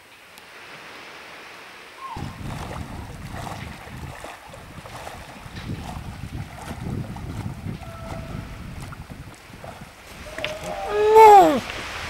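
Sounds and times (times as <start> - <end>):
person swimming splashing: 2.0 - 12.0
wind buffeting microphone: 2.0 - 12.0.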